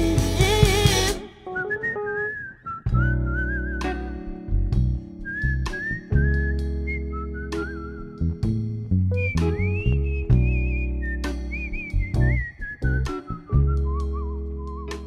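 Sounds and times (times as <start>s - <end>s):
drum and cymbal hits: 0.0s - 1.2s
electric bass notes: 0.0s - 1.2s, 2.9s - 15.0s
live band with singing: 0.0s - 1.5s
whistled melody: 0.9s - 15.0s
electric piano chords: 2.8s - 15.0s.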